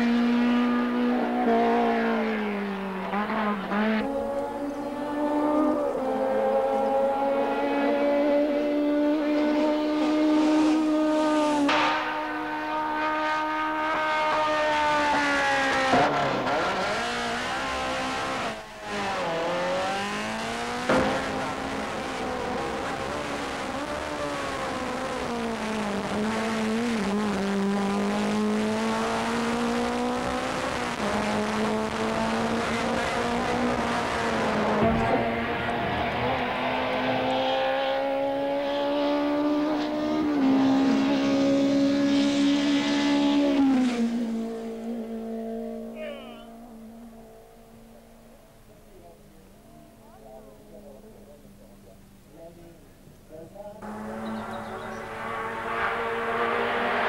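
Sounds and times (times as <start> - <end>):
rally car engines revving: 0.0 - 57.0.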